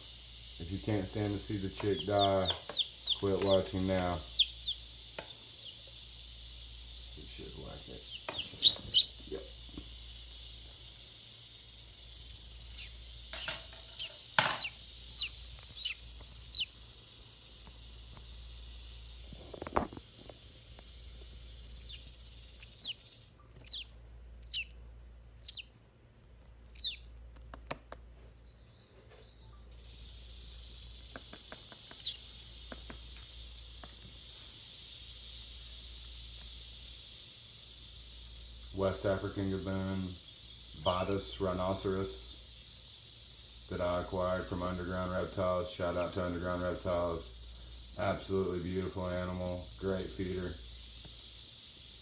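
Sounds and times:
chick cheeping: 0:01.4 - 0:05.9, 0:08.0 - 0:09.2, 0:12.1 - 0:16.8, 0:21.8 - 0:24.8, 0:25.4 - 0:25.8, 0:26.6 - 0:27.1, 0:31.8 - 0:32.3.

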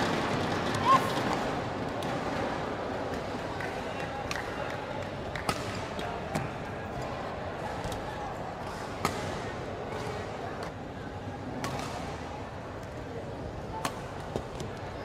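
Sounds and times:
voices in a sports hall: 0:00.0 - 0:15.0.

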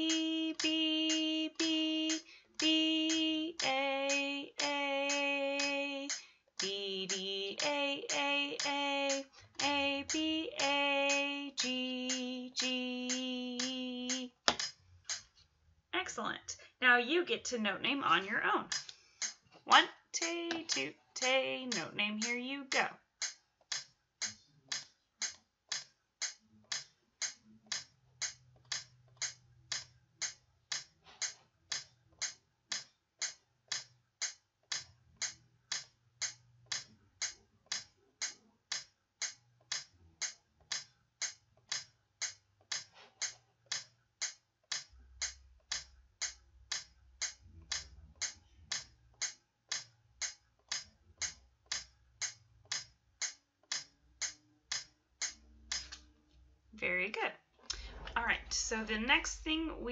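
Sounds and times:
metronome clicking: 0:00.0 - 0:15.3, 0:17.4 - 0:56.0, 0:57.7 - 0:59.9.

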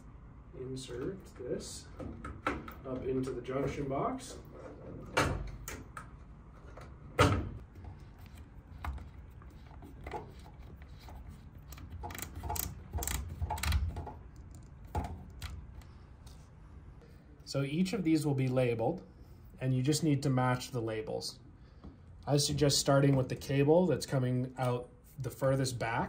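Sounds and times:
cable rubbing in metal box: 0:07.8 - 0:15.4.

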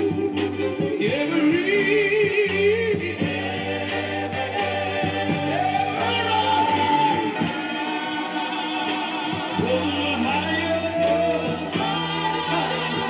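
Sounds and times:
soul record with singer: 0:00.0 - 0:13.0
steady bass line: 0:00.0 - 0:13.0.

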